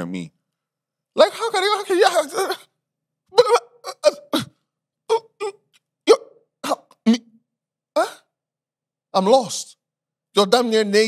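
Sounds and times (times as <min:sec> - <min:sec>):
man making short vocal sounds: 0:03.3 - 0:07.4.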